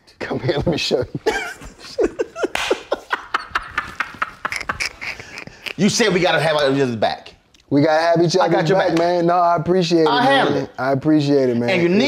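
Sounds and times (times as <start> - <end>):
men laughing: 0.5 - 5.8.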